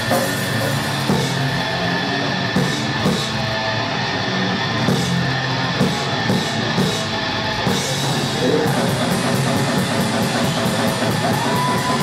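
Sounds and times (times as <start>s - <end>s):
distorted electric guitars: 0.0s - 12.0s
drum kit: 0.0s - 12.0s.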